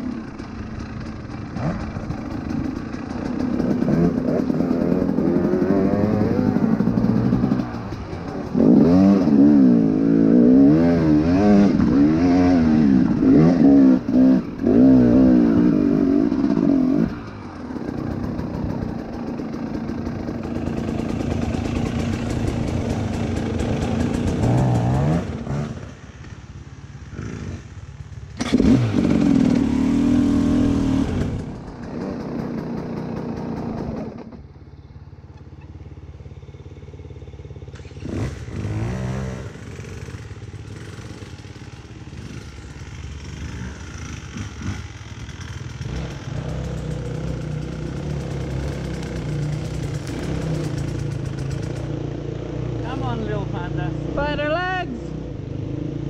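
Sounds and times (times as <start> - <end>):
dirt bike engine revving: 0.0 - 26.4, 27.0 - 34.4, 37.4 - 56.0.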